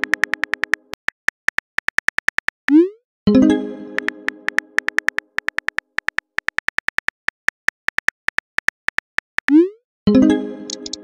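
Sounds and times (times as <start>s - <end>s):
phone keyboard key clicks: 0.0s - 2.6s, 4.0s - 9.5s.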